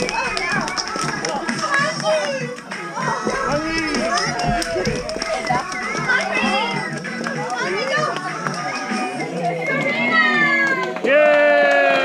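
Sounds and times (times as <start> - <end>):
chatter of children and adults: 0.0 - 11.2.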